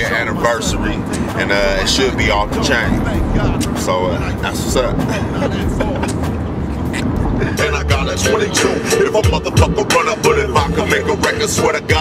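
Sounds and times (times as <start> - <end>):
road rumble inside car: 0.0 - 12.0
man laughing: 4.9 - 7.6.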